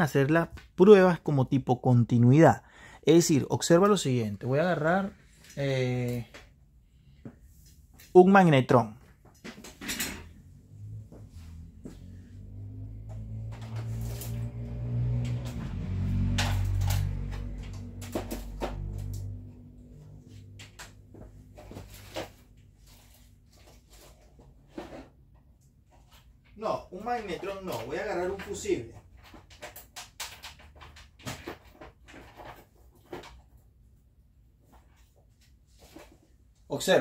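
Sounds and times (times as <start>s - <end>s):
low hum: 10.4s - 22.0s
objects knocking and clattering: 15.1s - 19.4s, 27.4s - 33.6s.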